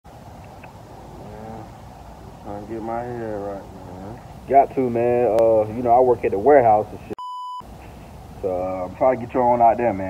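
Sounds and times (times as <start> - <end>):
low outdoor rumble: 0.1 - 10.0
man's voice: 2.4 - 7.2.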